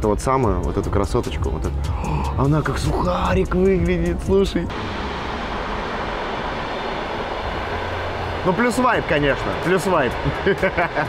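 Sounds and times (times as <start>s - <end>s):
train passing on track: 3.6s - 11.0s.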